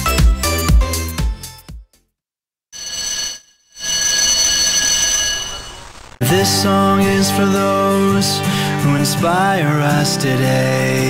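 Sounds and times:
high electronic ringing tones: 2.8s - 6.2s.

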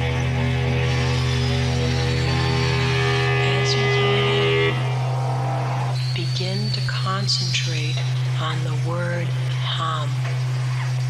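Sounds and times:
electric guitar droning chord: 0.0s - 6.1s
low amplifier hum: 0.0s - 11.0s.

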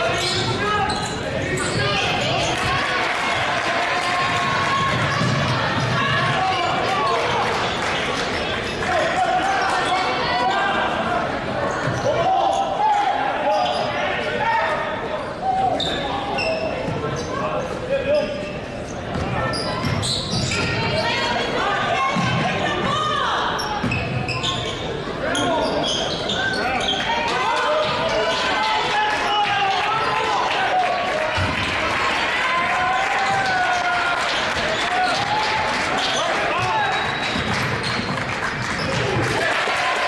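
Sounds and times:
sneaker squeaks: 0.0s - 2.7s, 4.4s - 6.7s, 11.6s - 14.2s, 15.1s - 28.8s, 36.0s - 39.2s
voices echoing in hall: 0.0s - 40.0s.

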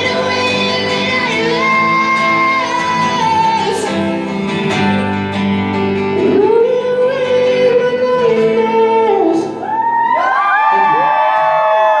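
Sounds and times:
man singing: 0.0s - 4.5s, 6.2s - 9.6s
people whooping and cheering: 9.4s - 12.0s.

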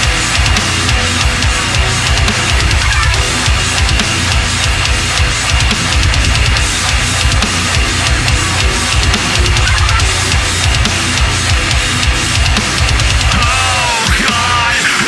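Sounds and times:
bass guitar: 0.0s - 15.0s
distorted electric guitar riff: 0.0s - 15.0s
rapid kick-drum hits: 0.0s - 15.0s.

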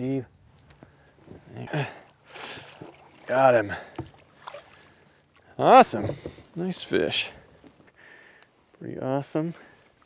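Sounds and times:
water splash: 2.2s - 4.9s.

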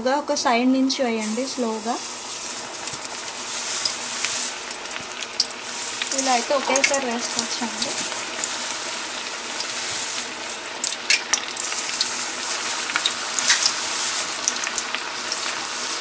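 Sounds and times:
fritters deep-frying in oil: 1.2s - 16.0s.

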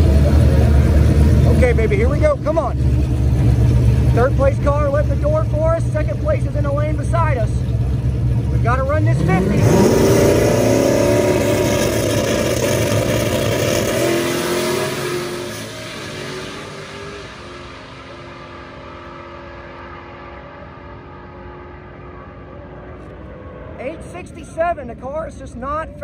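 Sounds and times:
drag cars accelerating at full throttle: 0.0s - 26.0s.

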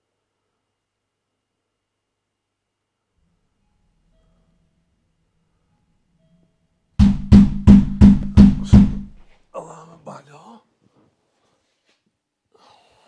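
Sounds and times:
loud knocks on door: 7.0s - 9.2s.

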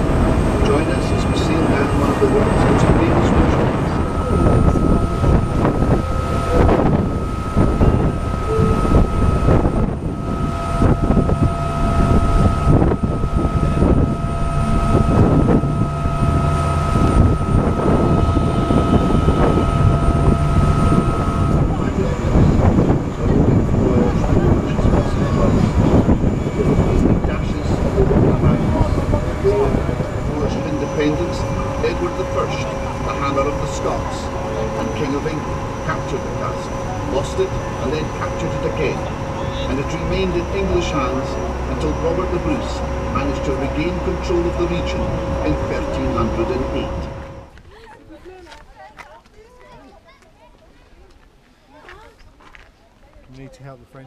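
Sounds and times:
boat engine drone: 0.0s - 47.6s
steady high whine: 0.0s - 47.6s
water rushing along hull: 0.0s - 47.6s
wind buffeting microphone: 0.0s - 53.3s.

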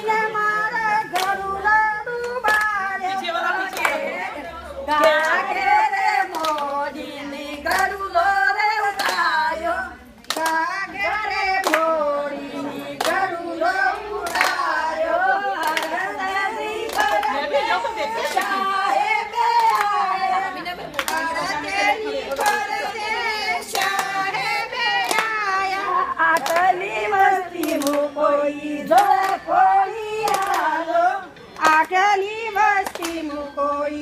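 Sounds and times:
women chattering: 0.0s - 34.0s
women singing folk song: 0.0s - 34.0s
hand claps: 1.1s - 1.4s, 2.1s - 2.8s, 3.7s - 4.0s, 6.2s - 6.8s, 8.9s - 9.3s, 10.2s - 10.6s, 11.6s - 11.9s, 13.0s - 13.3s, 14.2s - 14.7s, 15.6s - 16.0s, 16.8s - 17.3s, 21.0s - 21.4s, 22.3s - 22.9s, 23.7s - 25.6s, 26.3s - 28.1s, 28.9s - 29.4s, 30.2s - 30.8s, 31.5s - 33.3s.

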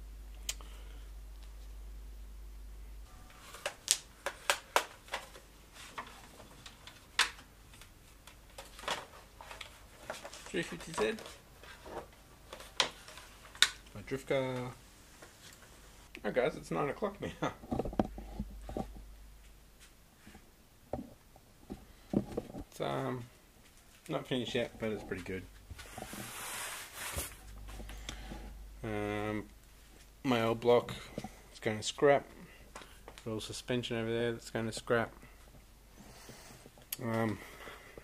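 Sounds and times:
man saying um: 28.8s - 29.5s.

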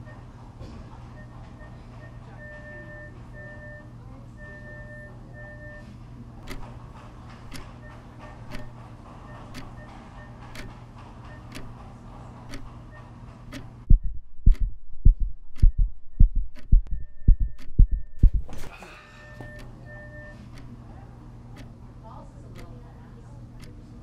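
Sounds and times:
clock ticking: 6.4s - 18.6s, 19.3s - 20.8s, 21.5s - 21.8s, 22.5s - 22.9s, 23.5s - 23.8s
fast heartbeat: 7.5s - 18.7s
low hum: 13.7s - 20.3s.

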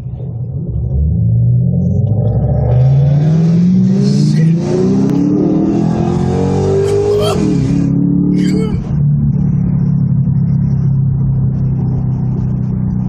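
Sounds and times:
car engine accelerating hard: 0.6s - 13.0s.

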